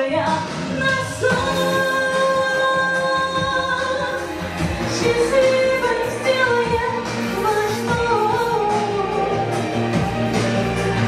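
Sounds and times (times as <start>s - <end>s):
woman singing into a microphone: 0.0s - 10.4s
backing music: 0.0s - 11.0s.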